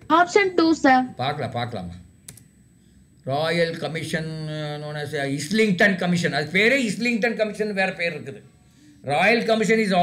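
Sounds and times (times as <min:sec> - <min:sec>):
computer keyboard typing: 0:02.3 - 0:02.5.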